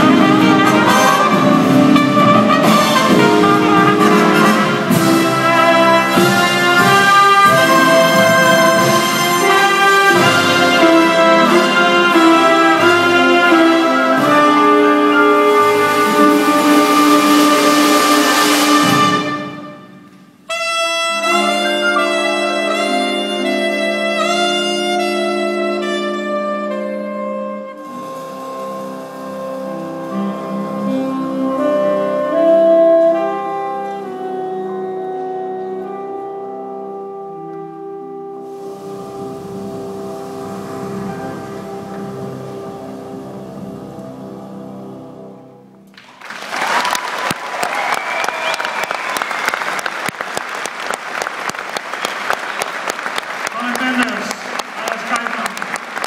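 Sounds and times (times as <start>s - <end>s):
trumpet holding long notes: 0.0s - 45.8s
jazz orchestra chords: 0.0s - 46.3s
audience applause: 45.9s - 56.0s.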